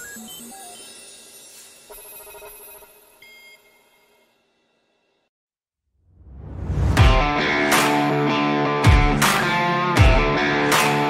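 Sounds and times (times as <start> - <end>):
bell-like chime: 0.5 - 4.4.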